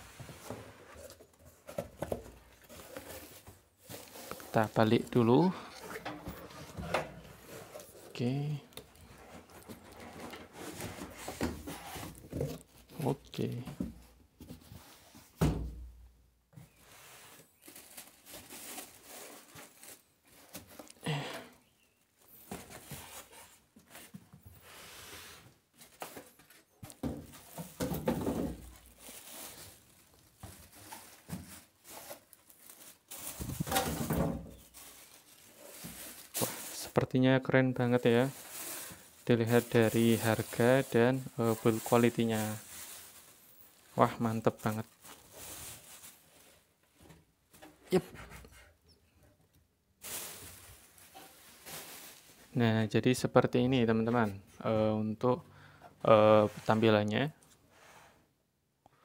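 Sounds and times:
cardboard scraping and rustling: 8.9s - 13.5s
plastic wrapping crinkling: 17.4s - 21.0s, 25.9s - 37.0s, 37.8s - 46.8s, 50.0s - 52.6s.

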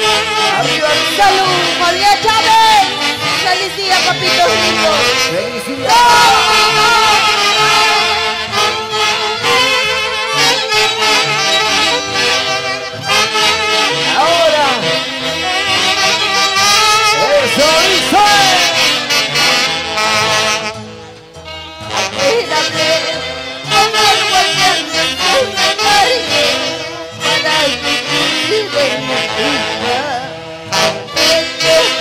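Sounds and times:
live brass band with saxophones: 0.0s - 32.0s.

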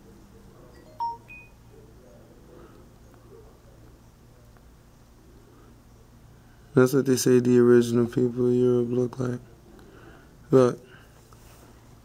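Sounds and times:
two-tone chime: 0.8s - 1.6s.

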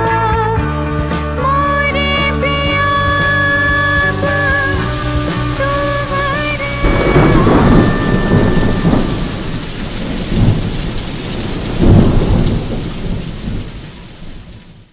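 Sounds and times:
steady rain: 1.9s - 14.9s
held musical notes: 2.3s - 10.5s
thunder rumbling: 2.9s - 14.9s.

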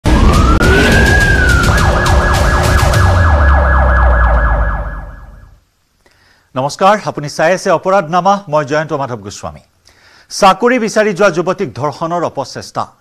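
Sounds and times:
steady beat: 0.0s - 5.4s
deep drone: 0.0s - 5.6s
siren wailing: 0.0s - 5.6s.

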